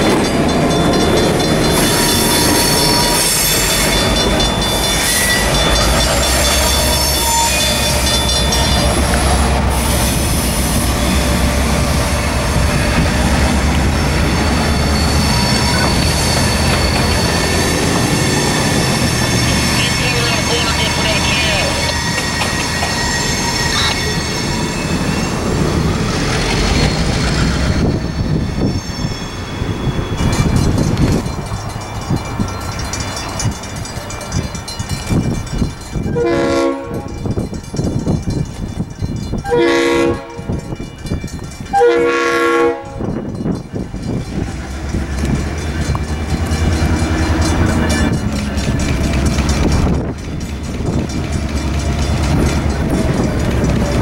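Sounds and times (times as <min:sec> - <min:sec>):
diesel locomotive engine rumble: 0:00.0 - 0:54.0
locomotive horn blasts: 0:36.1 - 0:37.2, 0:39.5 - 0:40.6, 0:41.7 - 0:43.1.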